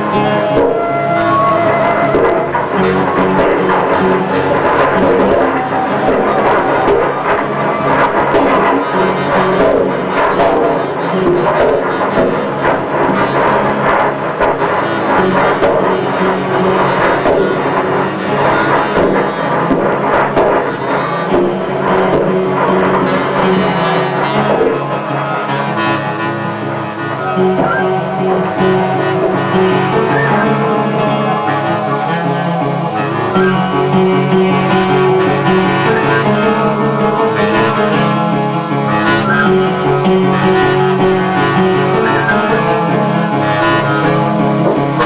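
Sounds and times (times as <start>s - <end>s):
dense music over low drone: 0.0s - 45.0s.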